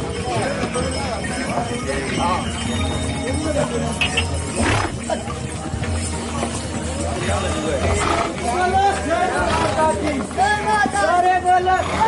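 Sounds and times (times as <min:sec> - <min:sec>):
crowd voices: 0:00.0 - 0:12.0
pony hooves clip-clopping: 0:00.0 - 0:12.0.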